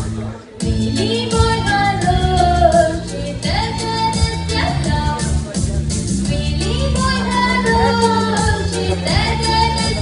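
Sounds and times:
woman singing: 0:00.6 - 0:05.5, 0:06.3 - 0:10.0.

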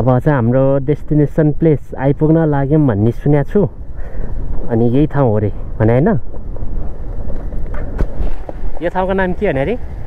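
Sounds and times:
wind buffeting microphone: 0:00.0 - 0:10.0
motorcycle rumble on gravel: 0:06.3 - 0:10.0.

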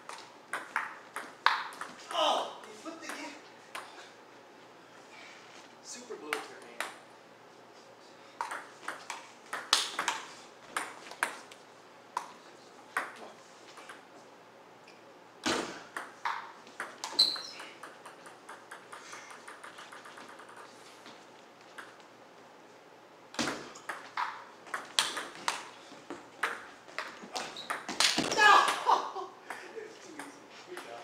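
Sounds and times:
ball bouncing on wooden floor: 0:00.1 - 0:03.9, 0:08.4 - 0:11.5, 0:15.4 - 0:22.1, 0:23.3 - 0:28.8
table tennis ball clicking: 0:16.0 - 0:20.7, 0:23.8 - 0:25.7.

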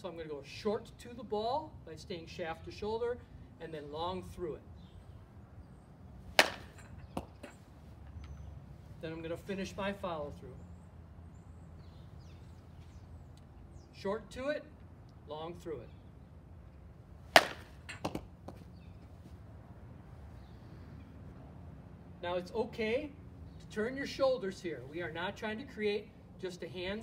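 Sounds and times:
bat striking a softball: 0:06.3 - 0:07.6, 0:17.3 - 0:18.6
ball tapping a net: 0:06.4 - 0:07.6, 0:17.3 - 0:18.6.

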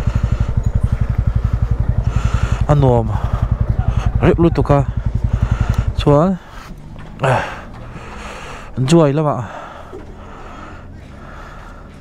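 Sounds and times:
person breathing: 0:00.0 - 0:04.2, 0:05.0 - 0:08.8, 0:09.4 - 0:12.0
low hum: 0:00.0 - 0:12.0.

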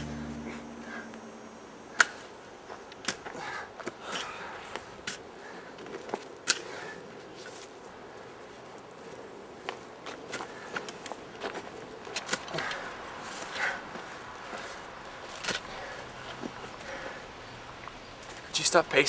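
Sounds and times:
rustle of leaves and dirt: 0:03.8 - 0:19.0.

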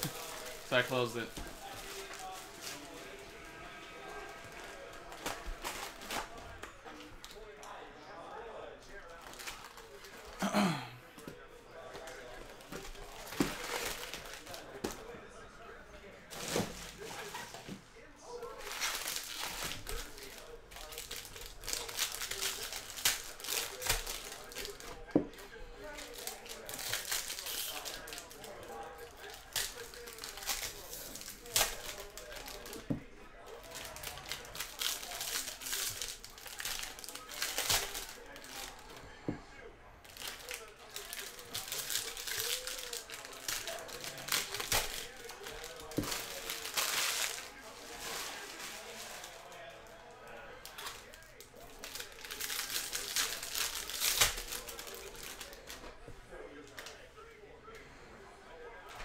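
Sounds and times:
foil wrappers crinkling and tearing: 0:00.0 - 0:03.4, 0:04.0 - 0:07.4, 0:09.0 - 0:10.8, 0:11.8 - 0:15.1, 0:16.3 - 0:17.7, 0:18.4 - 0:39.1, 0:40.0 - 0:55.9.

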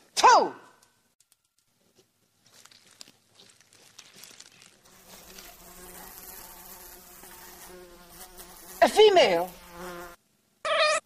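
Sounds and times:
housefly buzzing: 0:04.9 - 0:11.0.

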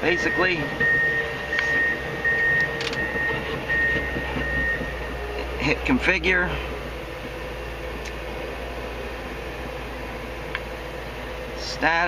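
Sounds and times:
high electronic beeps: 0:00.0 - 0:05.2
low machine hum: 0:00.0 - 0:12.0.

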